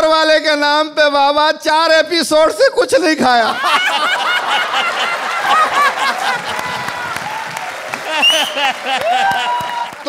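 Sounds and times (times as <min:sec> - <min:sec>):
audience laughing: 0:03.4 - 0:09.9
audience applauding: 0:03.7 - 0:10.0.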